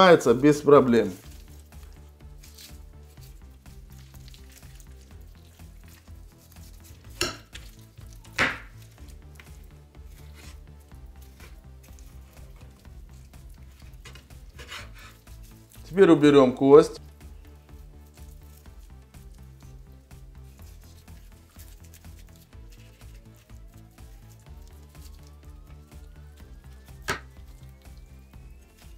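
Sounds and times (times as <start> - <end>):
sharp knocks on cutting board: 8.4 - 8.7
knife scraping on cutting board: 14.0 - 15.3.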